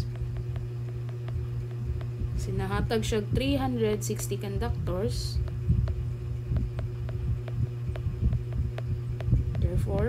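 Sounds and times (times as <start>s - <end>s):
stylus tapping on glass screen: 0.0s - 2.2s, 5.4s - 10.0s
steady low hum: 0.0s - 10.0s.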